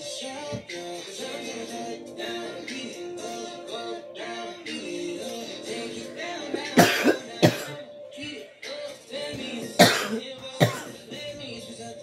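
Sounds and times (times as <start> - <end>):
music playing: 0.0 - 12.0
person coughing: 6.7 - 7.8, 9.8 - 11.4.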